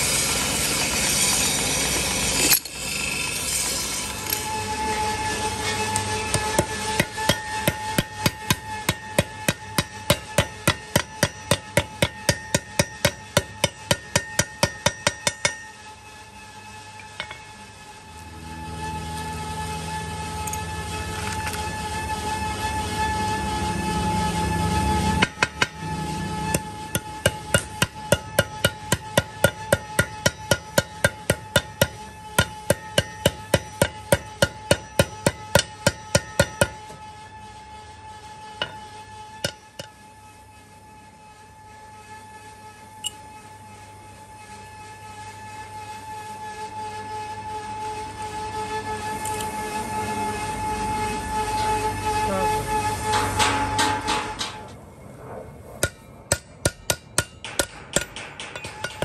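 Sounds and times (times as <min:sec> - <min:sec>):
hammer striking steel: 0:05.8 - 0:15.9, 0:17.0 - 0:17.6, 0:25.0 - 0:37.1, 0:38.6 - 0:40.0, 0:52.8 - 0:54.7, 0:55.8 - 0:59.0.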